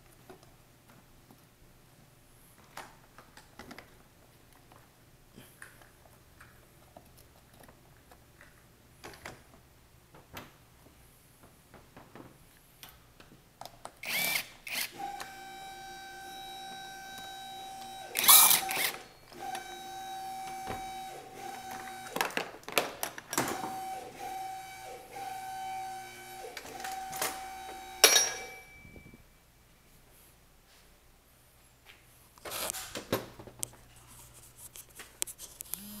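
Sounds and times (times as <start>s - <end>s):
cordless power tool whining: 14.0s - 22.2s.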